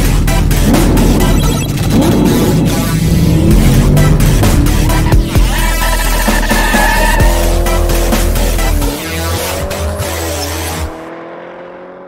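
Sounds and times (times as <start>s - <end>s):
car engine revving: 0.0s - 12.0s
tyres squealing: 5.2s - 7.6s.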